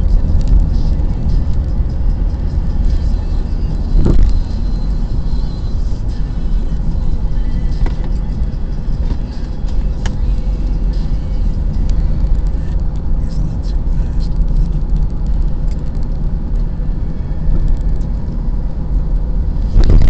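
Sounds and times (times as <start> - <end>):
car engine rumble: 0.0 - 20.0
tyre road noise: 0.0 - 20.0.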